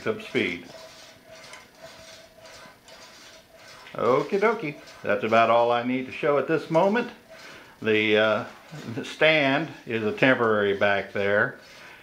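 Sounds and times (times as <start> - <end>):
wheel spinning with soft ticking: 0.0 - 12.0.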